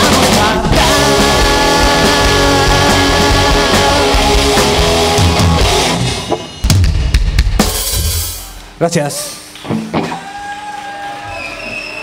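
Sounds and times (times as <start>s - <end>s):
drum and cymbal hits: 0.0s - 8.8s
live rock band playing: 0.0s - 8.8s.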